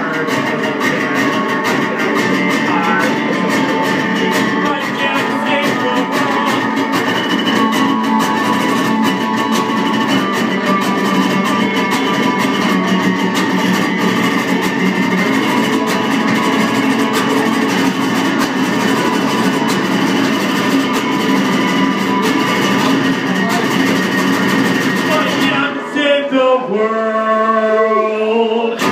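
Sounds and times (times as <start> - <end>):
acoustic guitar strumming: 0.0 - 28.9.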